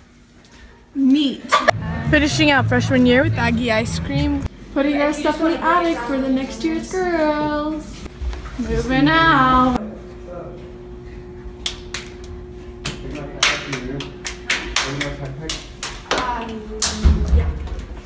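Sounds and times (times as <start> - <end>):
hands clapping and slapping: 11.6 - 12.2, 12.8 - 17.0.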